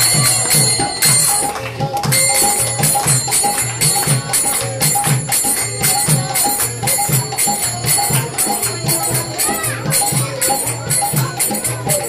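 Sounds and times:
hand cymbals ringing: 0.0s - 12.0s.

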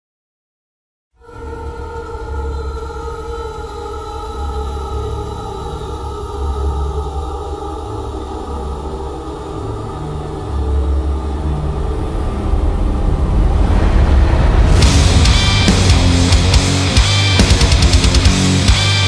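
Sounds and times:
rising swell of noise: 1.2s - 19.0s
sustained droning tones: 1.2s - 19.0s
deep rumbling bass notes: 9.9s - 19.0s.

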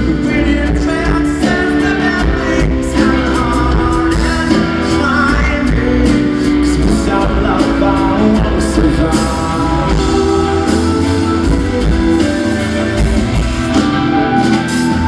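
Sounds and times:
man singing lead vocal: 0.0s - 11.9s
live rock band: 0.0s - 15.0s.

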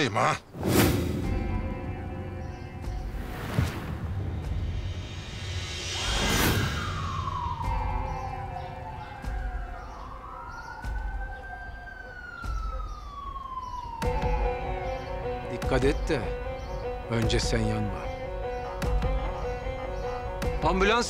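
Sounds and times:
low steady music: 1.1s - 5.8s, 6.8s - 21.0s
police sirens wailing: 6.7s - 21.0s.

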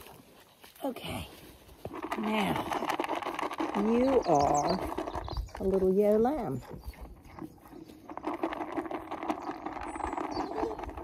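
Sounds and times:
sheep crunching feed: 0.0s - 11.0s.

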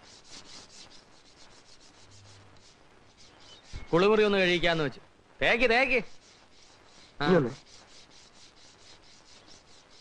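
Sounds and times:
old film soundtrack hiss: 0.0s - 10.0s.

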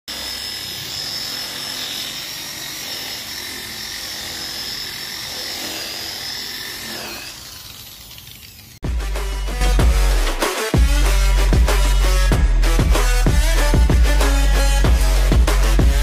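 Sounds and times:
electric polisher whining: 0.1s - 8.8s.

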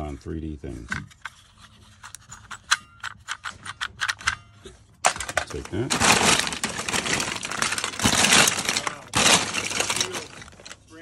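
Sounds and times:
plastic toys clicking together: 5.1s - 10.8s.

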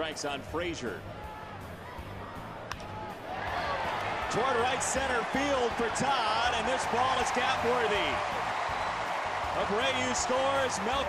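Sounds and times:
baseball bat crack: 2.6s - 3.0s.

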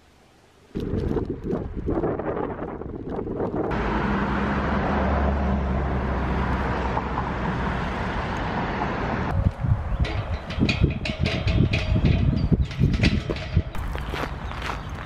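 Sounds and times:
wind rumbling on microphone: 0.7s - 3.8s, 9.1s - 15.0s
low engine hum: 3.5s - 10.0s
road traffic noise: 3.7s - 15.0s.

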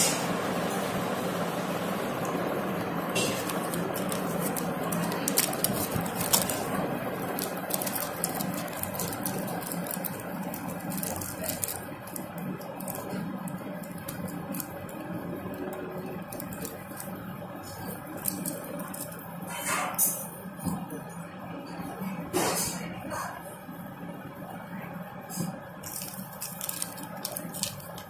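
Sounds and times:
steady background hum: 0.0s - 28.0s
plastic packet crinkling: 3.1s - 19.5s, 25.8s - 28.0s.

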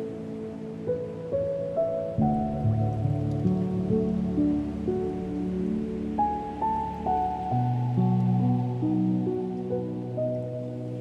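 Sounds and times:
ocean surf: 0.0s - 11.0s
slow solo piano: 0.0s - 11.0s.

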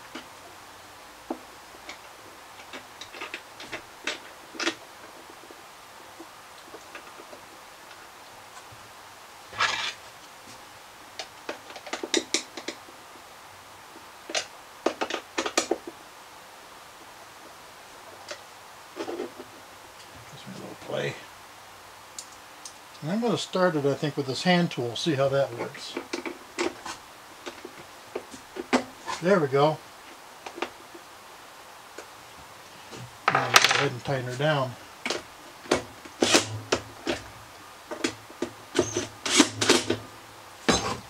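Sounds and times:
hardware and tools clicking: 37.9s - 40.0s.

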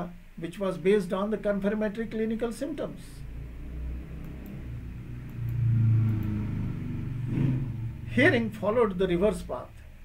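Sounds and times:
low engine rumble: 2.6s - 10.0s.

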